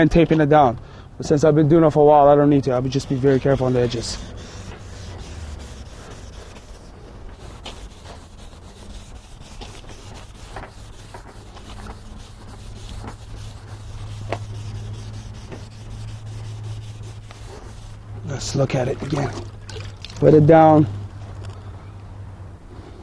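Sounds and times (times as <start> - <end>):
low steady hum: 0.0 - 22.7
sandpaper rubbing on plastic: 2.6 - 19.4.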